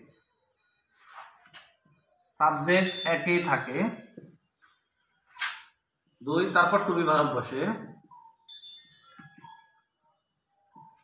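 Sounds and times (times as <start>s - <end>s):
whiteboard marker squeaking: 2.6s - 3.8s.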